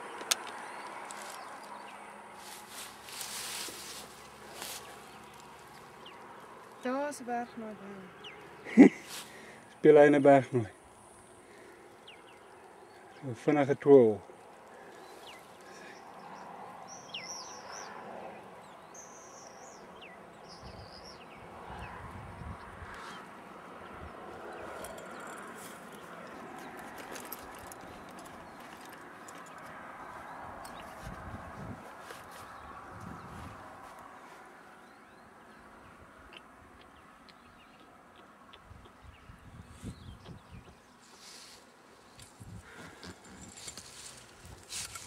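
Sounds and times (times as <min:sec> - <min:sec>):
wind hissing across grass: 0:00.6 - 0:06.2, 0:30.0 - 0:34.0, 0:39.1 - 0:45.0
wind buffeting microphone: 0:20.5 - 0:23.0, 0:29.5 - 0:32.0, 0:32.6 - 0:33.8, 0:38.6 - 0:40.8, 0:42.2 - 0:45.0.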